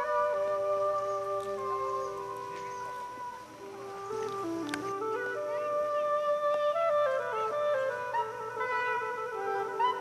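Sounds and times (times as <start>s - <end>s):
soft chords background music: 0.0s - 10.0s.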